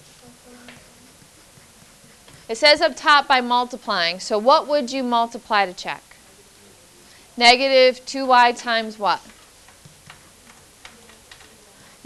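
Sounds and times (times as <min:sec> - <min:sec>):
stylus tapping on whiteboard: 0:09.2 - 0:11.6.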